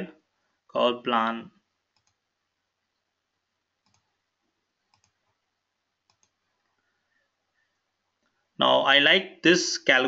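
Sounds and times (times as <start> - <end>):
faint computer mouse clicks: 1.9 - 2.2, 3.8 - 4.1, 4.9 - 5.4, 6.0 - 6.8.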